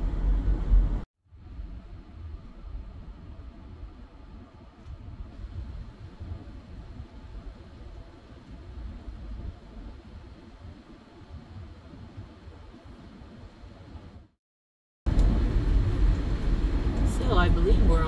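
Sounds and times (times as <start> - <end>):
road and engine rumble in car: 0.0 - 14.2, 15.1 - 18.0.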